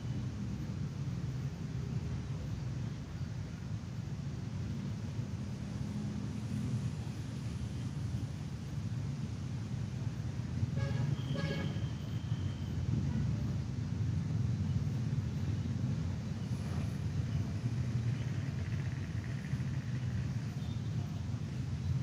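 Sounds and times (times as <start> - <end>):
road traffic rumble: 0.0 - 22.0
vehicle horn: 10.8 - 12.6.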